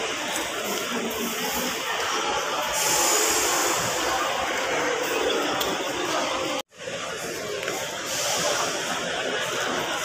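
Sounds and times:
hiss: 2.7 - 4.2.

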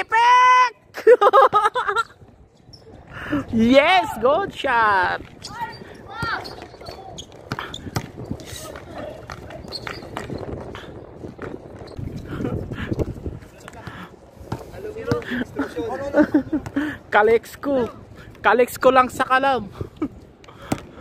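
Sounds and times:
players' voices: 2.7 - 11.4, 12.1 - 19.7
basketball bouncing: 6.2 - 10.4.

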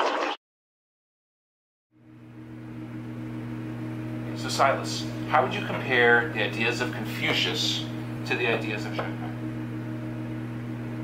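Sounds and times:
low hum with hiss: 2.0 - 11.0.

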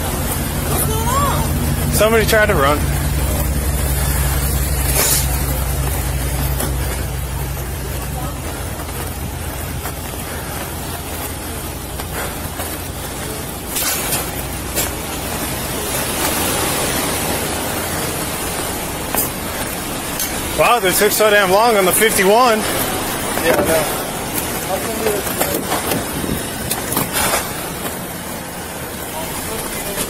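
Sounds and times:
vehicle engine idling: 0.0 - 30.0.

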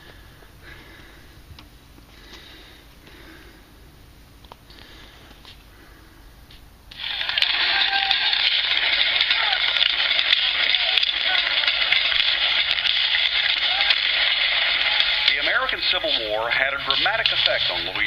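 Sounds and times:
narrator speaking: 15.3 - 18.0.

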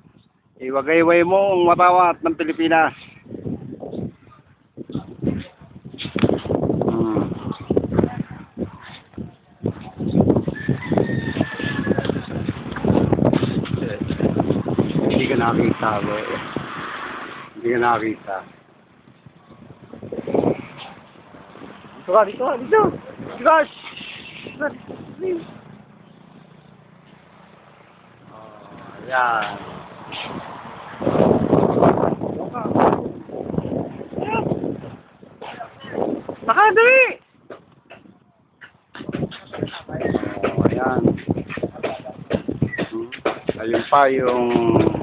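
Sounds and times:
wind buffeting microphone: 1.1 - 26.1, 27.9 - 45.0
rooster crowing: 10.5 - 12.4.

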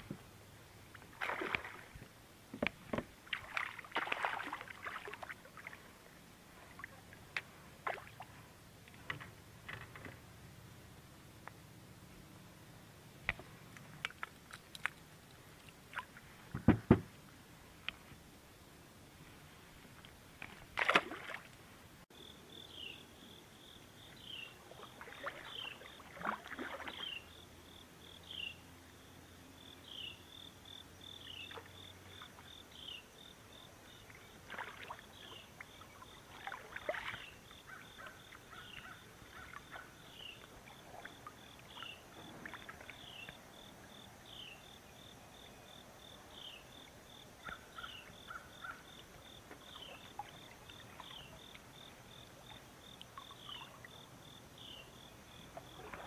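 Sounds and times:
fish splashing at the surface: 1.1 - 1.9, 3.3 - 5.8, 20.8 - 21.5.

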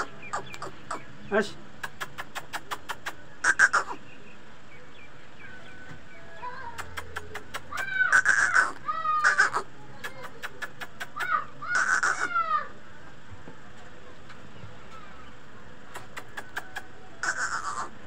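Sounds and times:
chick calling harshly: 0.0 - 1.2, 1.8 - 4.0, 6.4 - 12.8, 15.9 - 18.0.

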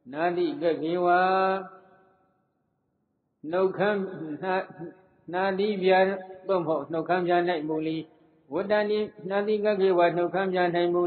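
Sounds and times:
man chanting: 0.1 - 1.6, 3.5 - 11.0.

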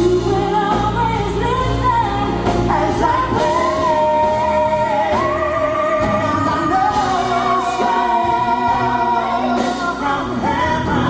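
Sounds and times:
live pop singing with band: 0.0 - 11.0.

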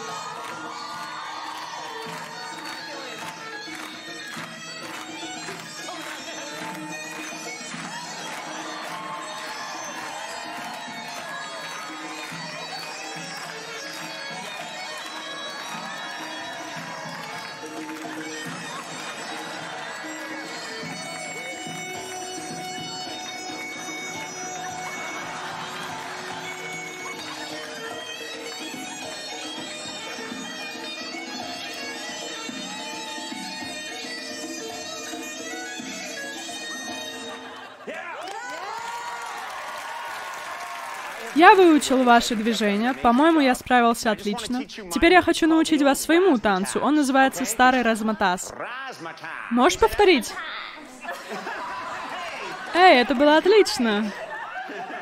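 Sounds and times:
reedy wind instrument melody: 0.0 - 37.8.

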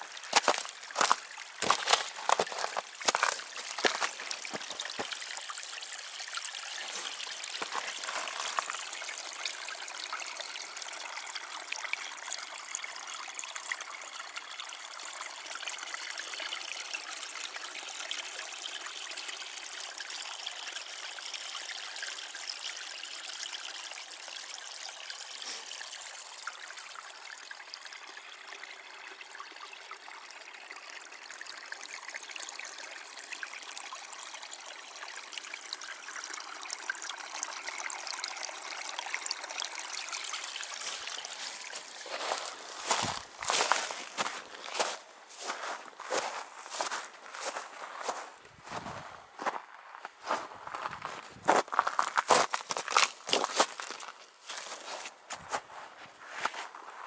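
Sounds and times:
brook trickling over stones: 0.0 - 57.0
footsteps crunching on frozen ground: 0.3 - 5.2, 6.9 - 8.8, 40.8 - 57.0.

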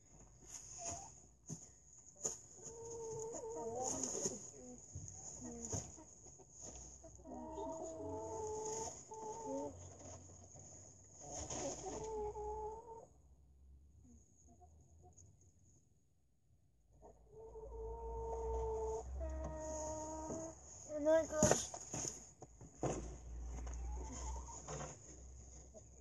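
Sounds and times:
hen clucking: 2.6 - 4.7, 5.4 - 10.0, 11.2 - 13.1, 17.0 - 20.6, 23.7 - 24.8, 25.5 - 26.0.

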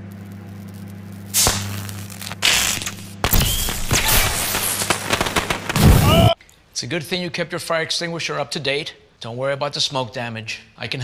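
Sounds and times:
microwave oven humming: 0.0 - 3.9
loud crackling and popping: 0.2 - 6.4
sharp crack and pop: 0.4 - 6.0.

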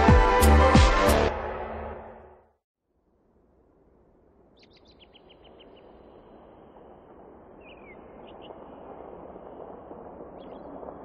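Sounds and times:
soft outdoor ambience: 2.8 - 11.0
birds chirping: 4.5 - 10.9.

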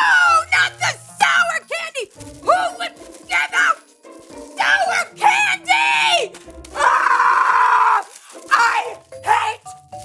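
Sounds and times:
woman screaming: 0.0 - 0.6, 4.6 - 9.6.

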